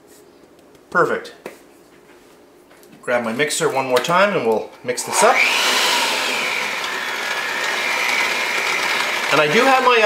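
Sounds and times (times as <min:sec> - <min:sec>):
electric hand mixer whining: 0:05.1 - 0:10.0
beaters churning batter: 0:05.4 - 0:10.0.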